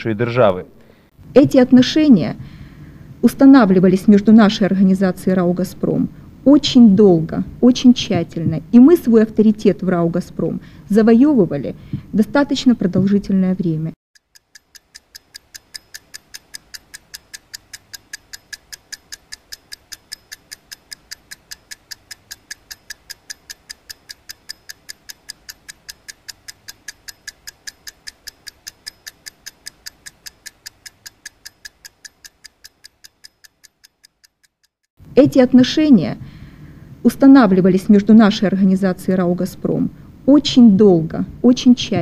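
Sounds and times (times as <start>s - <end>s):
steady regular ticking: 1.1s - 13.3s, 14.2s - 35.8s.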